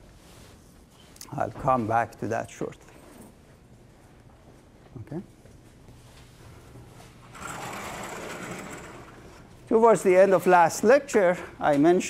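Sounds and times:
sliding panel rolling rumble: 7.1 - 10.3.

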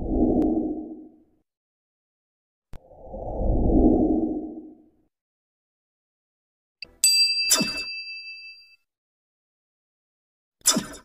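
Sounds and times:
bright bell chime: 6.8 - 8.8.

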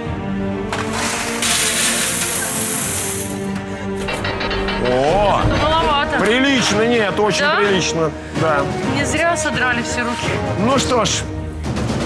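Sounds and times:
coins clinking into metal bowl: 0.9 - 3.5.

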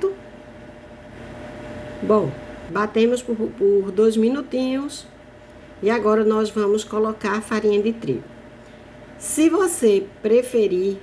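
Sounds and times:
mechanical hum and hiss: 0.0 - 11.0.

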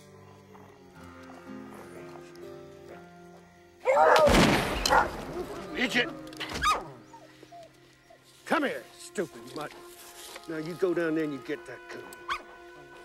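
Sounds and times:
film score held notes: 0.0 - 13.0
hounds barking and baying: 3.8 - 8.4, 12.2 - 12.6.

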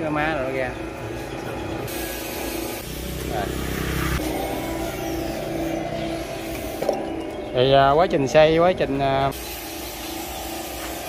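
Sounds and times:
juicer motor humming: 2.8 - 7.6.

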